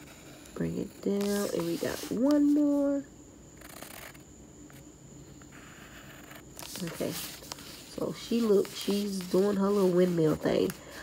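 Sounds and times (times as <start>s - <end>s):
pencil scratching on wood: 5.5s - 10.8s.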